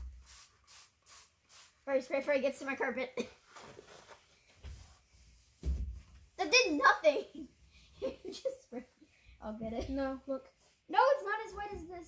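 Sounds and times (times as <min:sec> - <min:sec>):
spray bottle hissing sprays: 0:00.0 - 0:01.9.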